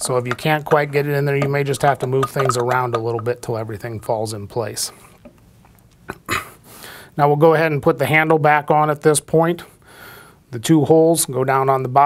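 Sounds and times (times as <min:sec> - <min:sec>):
person speaking: 0:00.0 - 0:05.3.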